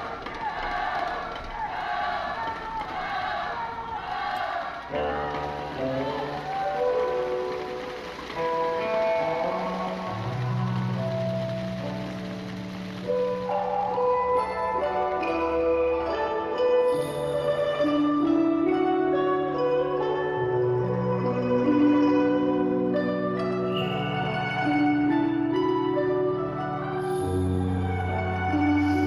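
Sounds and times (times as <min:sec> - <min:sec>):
voices in a hall: 0:00.0 - 0:29.0
slow instrumental music: 0:04.9 - 0:29.0.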